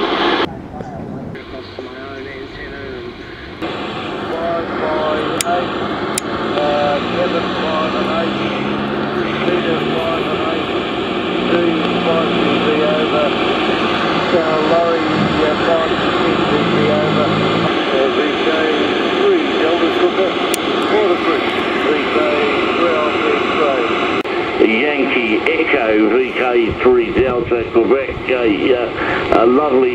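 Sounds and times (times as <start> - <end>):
low hum: 0.0 - 29.8
faint unintelligible radio voice: 0.5 - 3.6, 4.2 - 5.8, 6.5 - 10.7, 11.4 - 13.4, 14.3 - 29.9
loud radio static hiss: 1.3 - 29.9.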